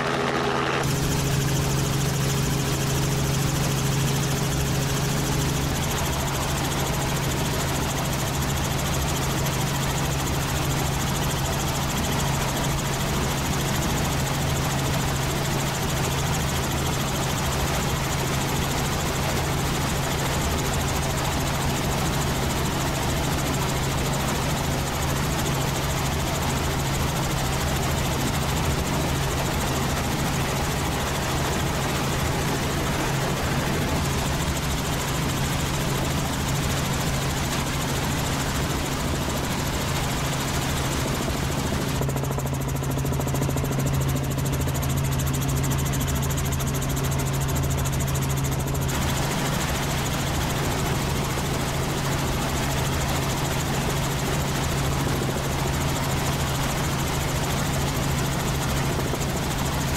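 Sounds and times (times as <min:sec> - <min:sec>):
helicopter engine and rotor hum: 0:00.0 - 0:59.9.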